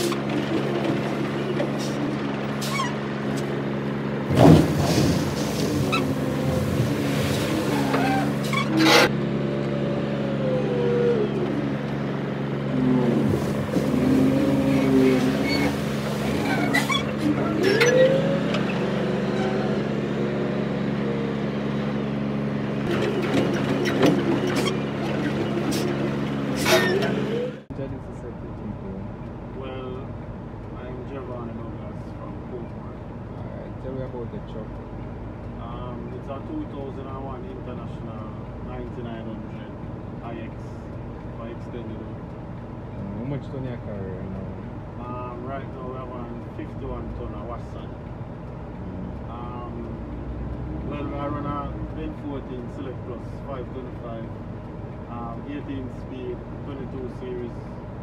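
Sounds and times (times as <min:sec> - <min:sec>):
hydraulic whine: 0:00.0 - 0:27.7
diesel engine running: 0:00.0 - 0:58.0
loud clunks: 0:04.2 - 0:06.9.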